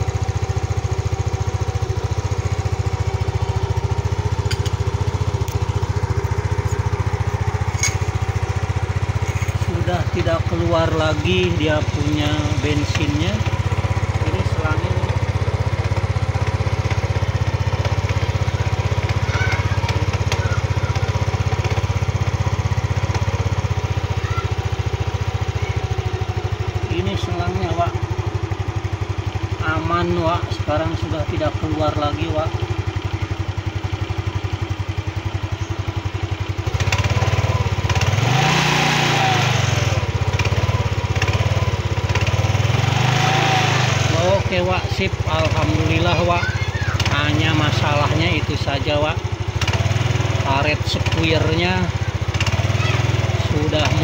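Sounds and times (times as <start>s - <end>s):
scooter engine running: 0.0s - 54.0s.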